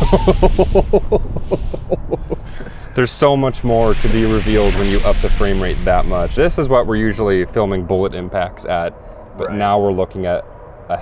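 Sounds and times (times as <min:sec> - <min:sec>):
man laughing: 0:00.0 - 0:03.0
low rumble of explosion: 0:00.0 - 0:09.0.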